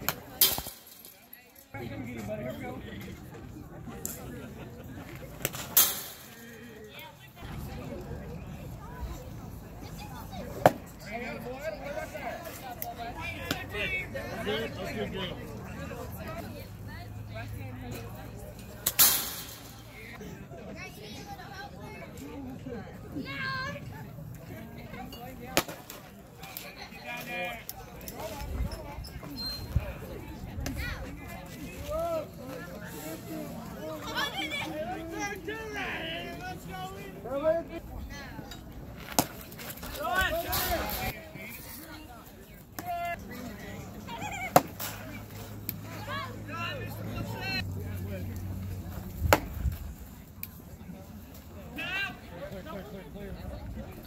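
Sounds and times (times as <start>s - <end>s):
faint voices murmuring: 0.0s - 54.0s.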